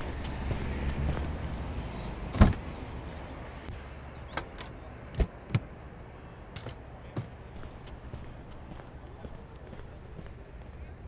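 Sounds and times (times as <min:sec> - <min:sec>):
street and traffic rumble: 0:00.0 - 0:11.0.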